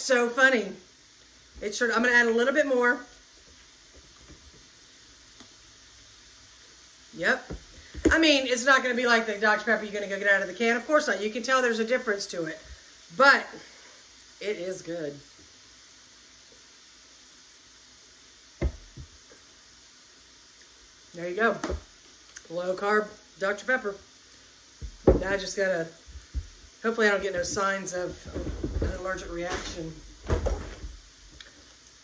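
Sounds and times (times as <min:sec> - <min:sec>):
faint room hiss: 0:00.0 - 0:32.0
heavy thumps: 0:07.4 - 0:08.4, 0:18.6 - 0:19.2, 0:24.8 - 0:31.0
bottle knocking on counter: 0:18.6 - 0:19.1, 0:24.8 - 0:25.4.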